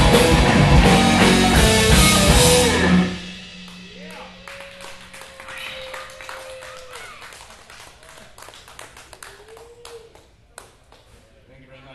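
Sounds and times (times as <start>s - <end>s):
rock song held note: 0.0s - 5.5s
sparse clapping: 3.7s - 11.1s.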